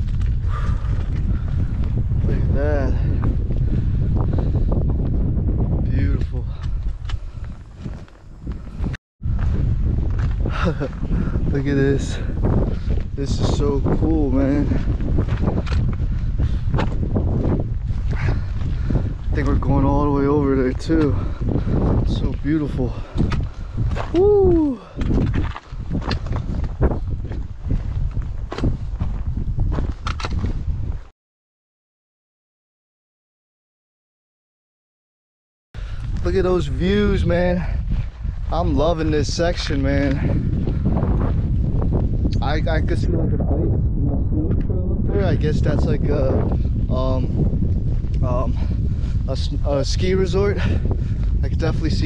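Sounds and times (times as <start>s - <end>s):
footsteps crunching on rocky trail: 0.0s - 19.6s, 20.8s - 31.1s, 35.8s - 36.4s, 37.6s - 42.3s
wind buffeting microphone: 0.0s - 31.1s, 35.8s - 52.0s
footsteps on rock: 6.2s - 11.0s, 14.7s - 19.5s, 23.1s - 24.3s, 24.9s - 31.1s.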